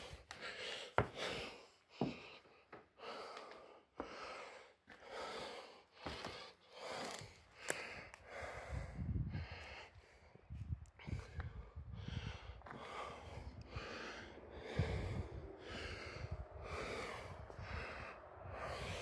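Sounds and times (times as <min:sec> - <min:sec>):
person breathing hard: 0:00.0 - 0:19.0.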